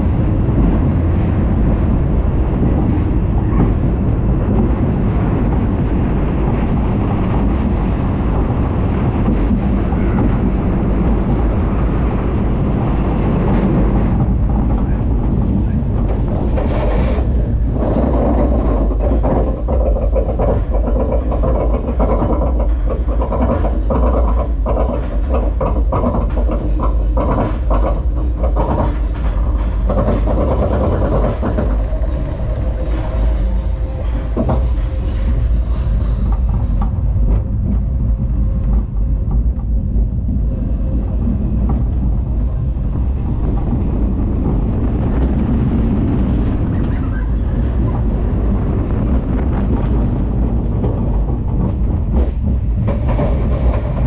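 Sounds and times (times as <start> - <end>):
roller coaster chain clicks: 0.0 - 54.0
roller coaster rumbling on track: 0.0 - 54.0.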